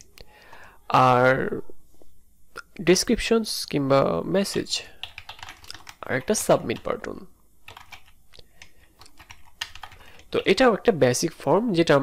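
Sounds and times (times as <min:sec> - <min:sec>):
computer keyboard typing: 0:04.5 - 0:10.6.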